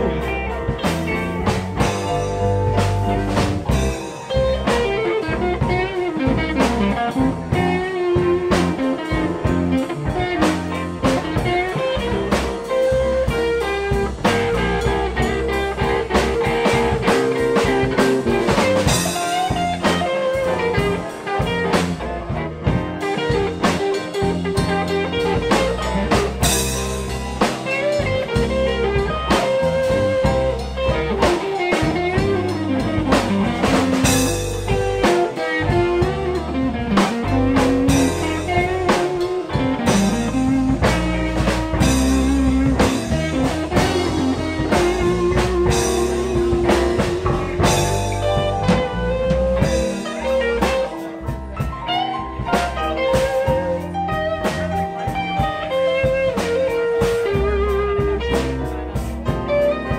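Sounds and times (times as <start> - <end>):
live band jamming: 0.0 - 59.9.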